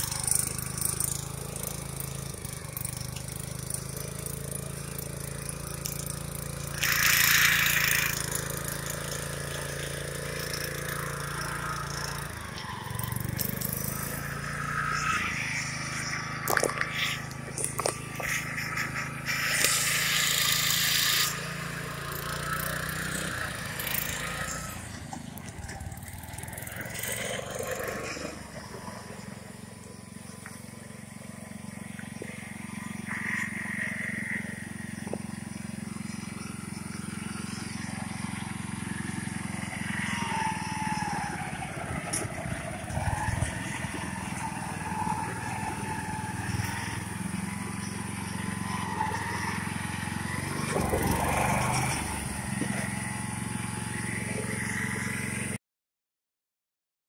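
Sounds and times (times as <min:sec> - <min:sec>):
small tractor engine running: 0:00.0 - 0:55.6
tires rolling over gravel: 0:00.0 - 0:55.6.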